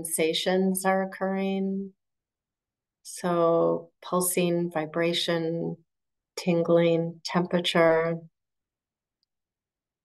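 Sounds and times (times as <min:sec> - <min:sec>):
woman's voice: 0:00.0 - 0:02.0, 0:03.1 - 0:05.8, 0:06.4 - 0:08.4.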